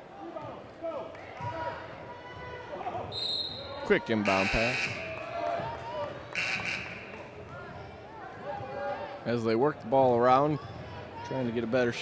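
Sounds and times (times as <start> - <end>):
faint echoing voices: 0.0 - 12.0
shrill whistle blast: 3.2 - 3.7.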